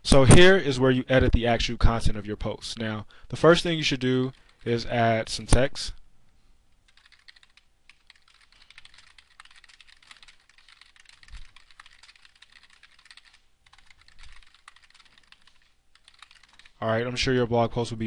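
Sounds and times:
computer keyboard typing: 0:04.0 - 0:04.8, 0:06.9 - 0:16.8.

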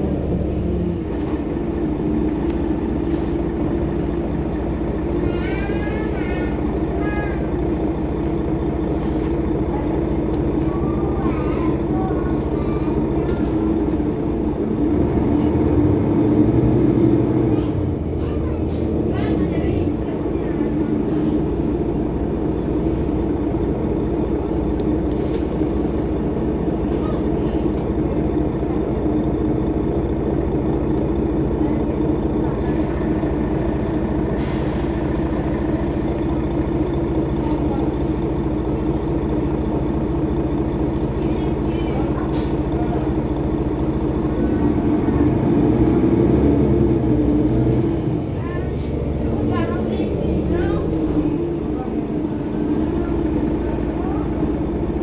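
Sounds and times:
bus engine running: 0:00.0 - 0:55.0.

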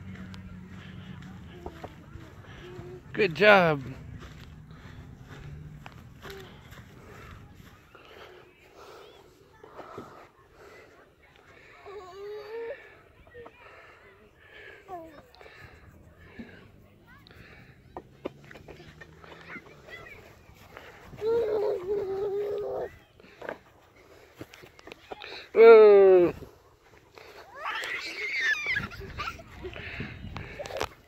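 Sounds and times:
other voices: 0:00.0 - 0:31.0
toddler breathy vocal sounds: 0:11.8 - 0:13.6, 0:18.7 - 0:23.4
toddler's high vocal sound: 0:21.2 - 0:22.9.

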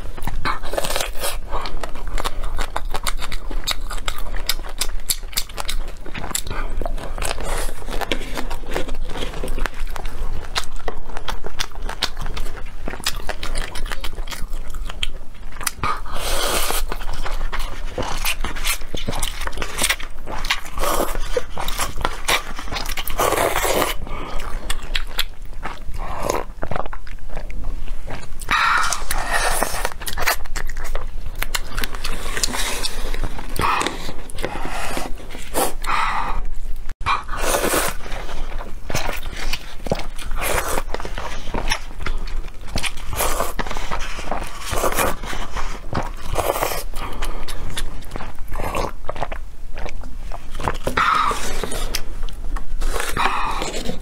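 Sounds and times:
slurping and chewing noodles: 0:00.0 - 0:54.0.

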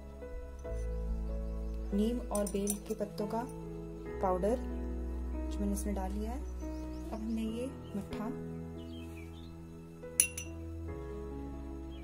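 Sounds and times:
background music: 0:00.0 - 0:12.0
glass bowl clinking: 0:10.2 - 0:10.6.

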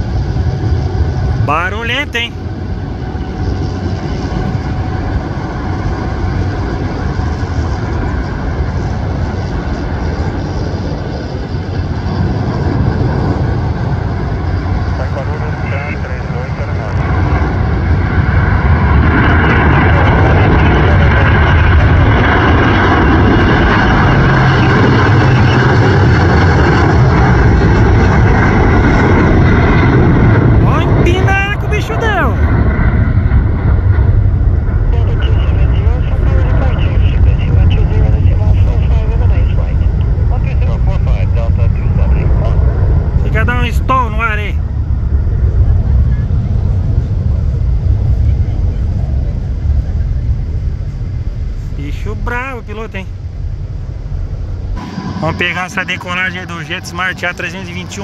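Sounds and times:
jet engines at takeoff thrust: 0:00.0 - 0:58.0.

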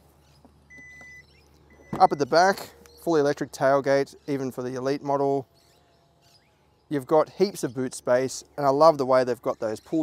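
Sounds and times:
high warning beeps: 0:00.7 - 0:02.8.

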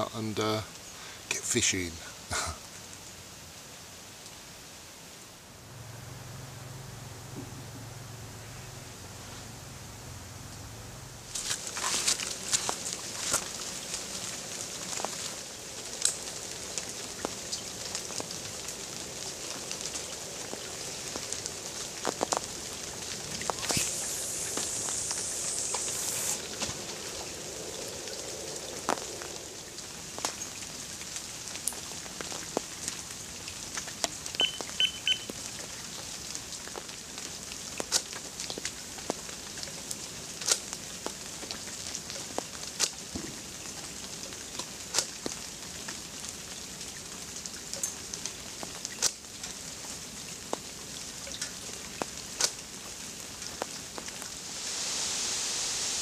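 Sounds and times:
electronic bite alarm beeps: 0:34.4 - 0:35.3.

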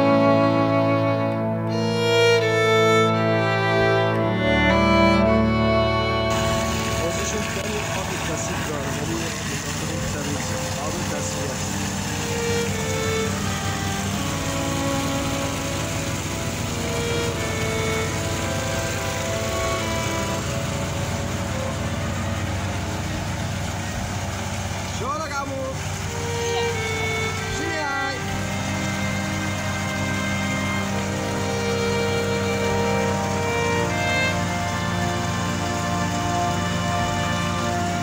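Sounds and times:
water pump running: 0:00.0 - 0:38.0.

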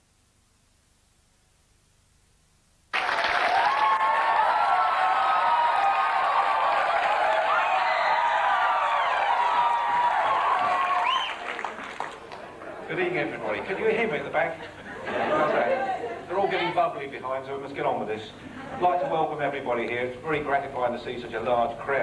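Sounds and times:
audience applauding and cheering: 0:02.9 - 0:12.8.

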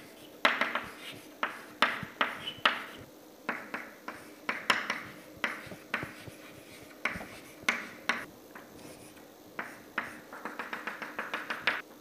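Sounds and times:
chalk scratching on chalkboard: 0:00.0 - 0:11.8.

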